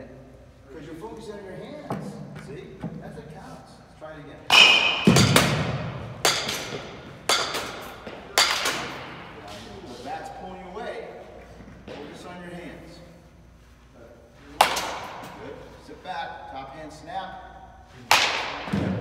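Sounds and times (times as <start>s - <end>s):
baseball bat hitting balls: 4.5s - 9.5s, 14.5s - 15.5s, 18.0s - 19.0s.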